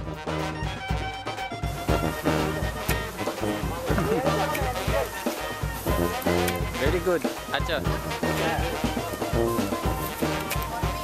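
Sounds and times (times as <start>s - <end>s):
music with steady beat: 0.0s - 11.0s
man speaking: 6.6s - 9.0s.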